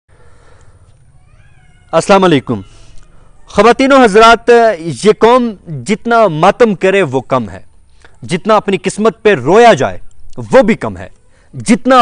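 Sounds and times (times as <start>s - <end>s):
man's voice: 8.2s - 12.0s.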